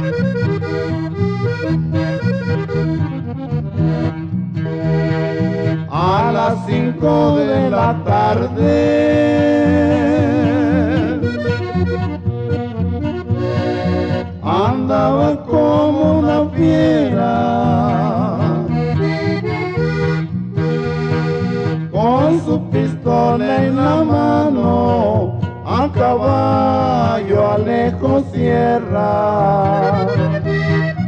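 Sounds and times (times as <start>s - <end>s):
accordion runs and trills: 0.0s - 31.0s
pulsing bass line: 0.0s - 31.0s.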